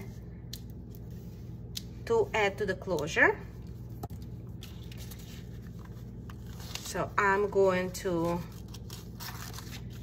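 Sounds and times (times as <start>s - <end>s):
steady low hum: 0.0s - 10.0s
paper envelope rustling: 4.2s - 10.0s.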